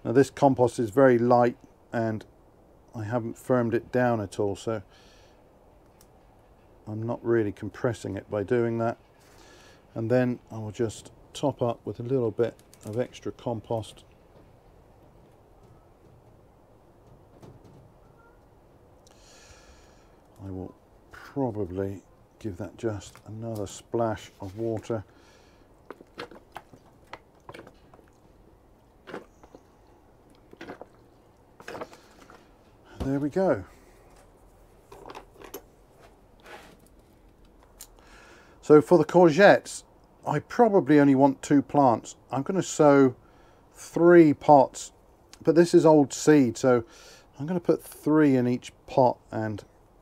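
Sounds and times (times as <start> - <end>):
faint background hiss: 0.0 - 50.0
potting compost rustling: 6.9 - 14.1, 20.3 - 37.8
faint rustles and light clicks: 12.0 - 18.5, 25.8 - 38.0.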